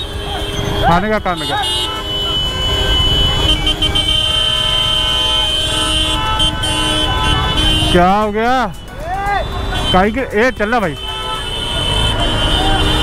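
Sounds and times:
low traffic rumble: 0.0s - 13.0s
vehicle horns honking: 0.0s - 13.0s.

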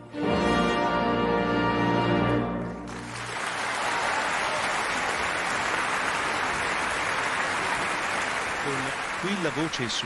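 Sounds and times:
audience applauding: 2.6s - 10.0s.

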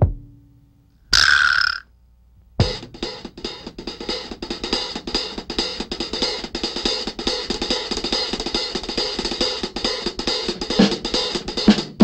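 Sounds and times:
drum stroke: 0.0s - 0.5s, 2.6s - 12.0s.

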